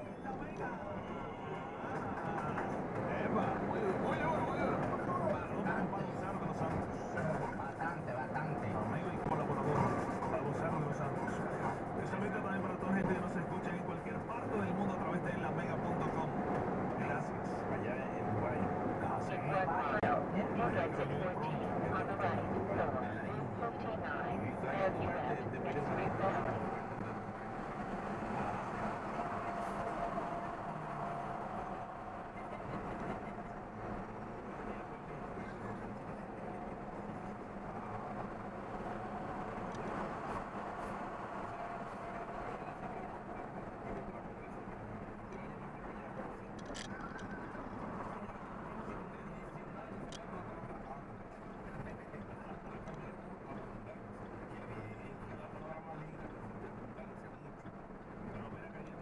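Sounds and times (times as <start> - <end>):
truck engine and road noise: 0.0 - 59.0.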